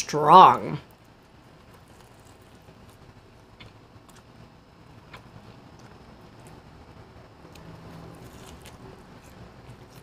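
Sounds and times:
faint chewing: 0:00.8 - 0:10.0.

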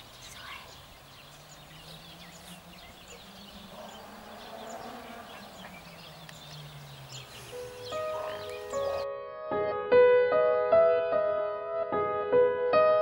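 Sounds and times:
small birds chirping: 0:00.0 - 0:09.0
piano notes: 0:01.9 - 0:13.0.

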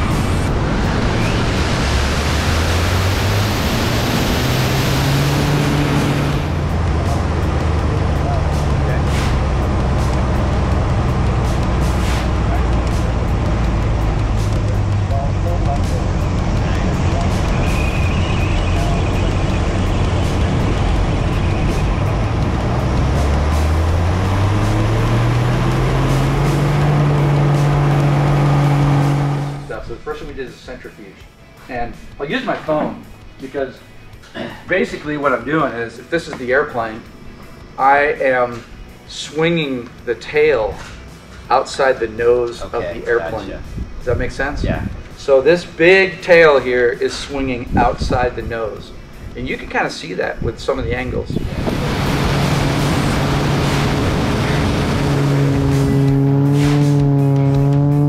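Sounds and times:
rush of airflow: 0:00.0 - 0:06.6, 0:51.4 - 0:56.0
propeller plane engine: 0:00.0 - 0:12.0, 0:12.6 - 0:29.7, 0:51.4 - 0:58.0.

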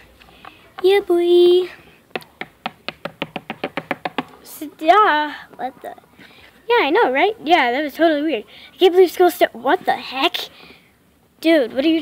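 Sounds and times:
toy tapping against book spines: 0:02.1 - 0:04.4.

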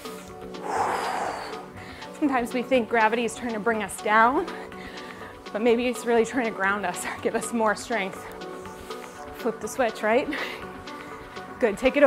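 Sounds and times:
background music: 0:00.0 - 0:12.0
person breathing out: 0:00.6 - 0:02.0.

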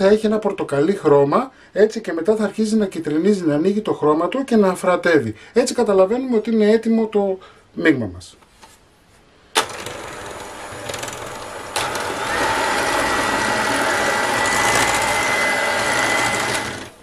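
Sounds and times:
electric mixer running: 0:09.6 - 0:17.0
high mixer whine: 0:09.6 - 0:17.0.

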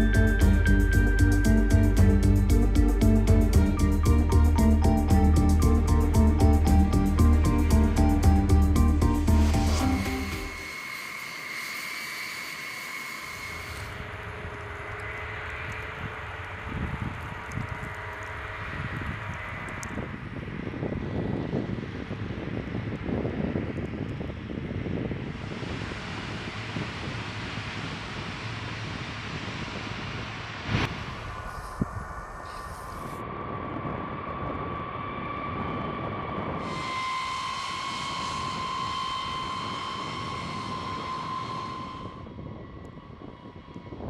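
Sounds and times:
music: 0:00.0 - 0:11.1, 0:36.6 - 0:42.2
engine rumble with hiss: 0:24.5 - 0:33.2.

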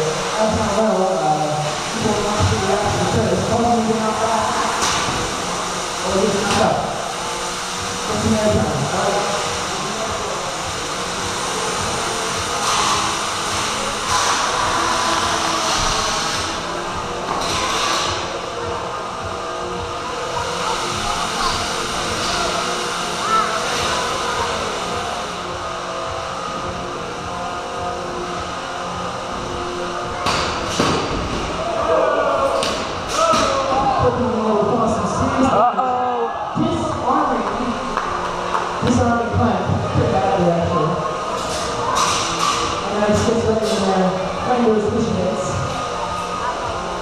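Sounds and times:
echoing background chatter: 0:00.0 - 0:47.0.

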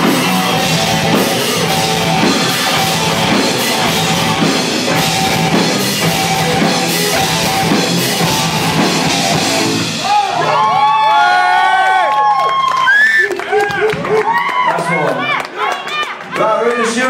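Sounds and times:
live hard rock band: 0:00.0 - 0:11.0
audience cheering and whooping: 0:00.0 - 0:16.4.

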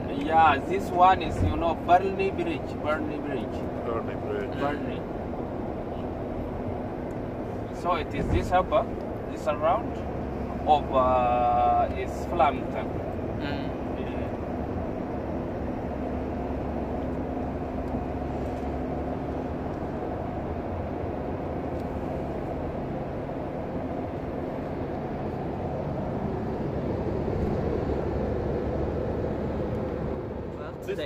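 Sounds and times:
road and engine noise in car: 0:00.0 - 0:31.0.

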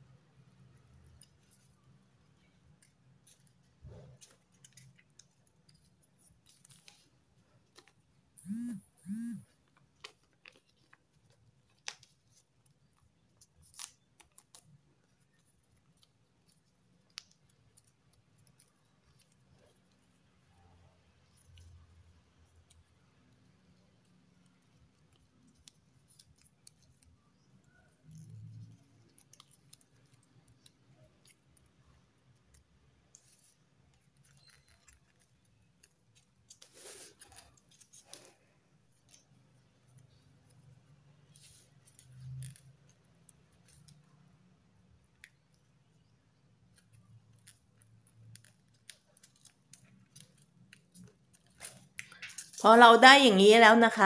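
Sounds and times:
paper crinkling and creasing: 0:00.8 - 0:08.1, 0:09.6 - 0:44.2, 0:44.8 - 0:52.7.

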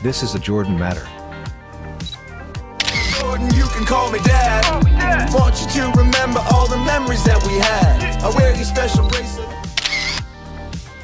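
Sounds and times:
background music: 0:00.0 - 0:11.0
camera shutter clicks: 0:02.8 - 0:03.3, 0:09.7 - 0:10.3.

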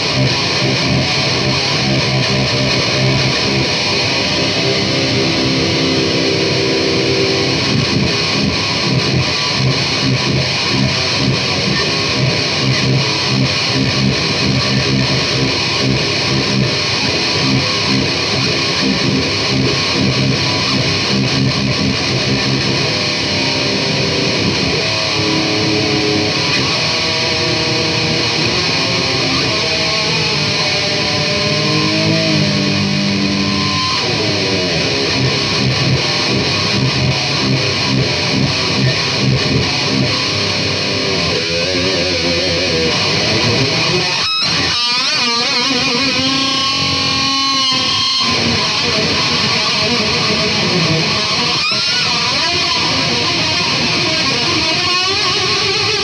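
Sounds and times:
electric guitar riffs and chords: 0:00.0 - 0:56.0.

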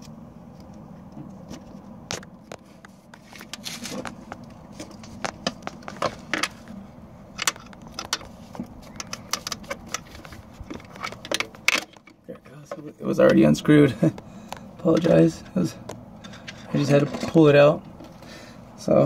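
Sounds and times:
screwdriver clicking and scraping plastic: 0:07.4 - 0:12.2.

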